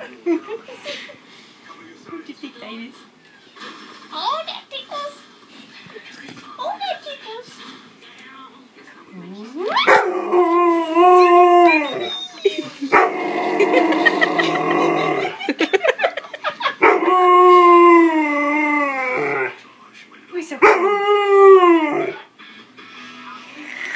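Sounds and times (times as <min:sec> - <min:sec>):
dog howling: 0:09.6 - 0:15.4, 0:16.8 - 0:19.6, 0:20.6 - 0:22.2.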